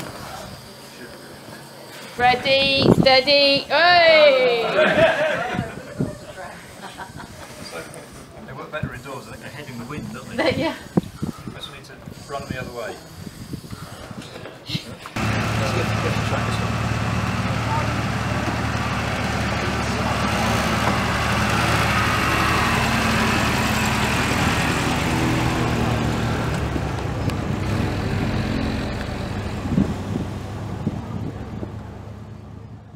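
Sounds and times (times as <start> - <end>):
car engine droning: 15.2 - 32.9.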